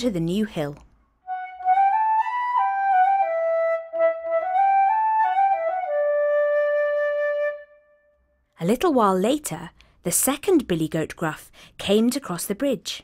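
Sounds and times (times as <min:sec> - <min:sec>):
flute melody: 0:01.2 - 0:08.2.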